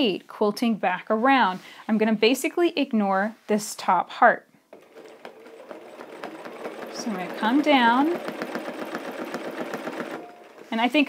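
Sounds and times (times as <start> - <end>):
sewing machine running: 4.7 - 11.0.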